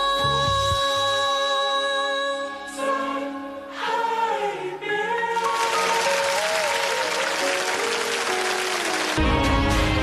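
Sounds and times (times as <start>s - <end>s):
backing music sustained notes: 0.1s - 10.0s
audience applauding: 5.4s - 9.5s.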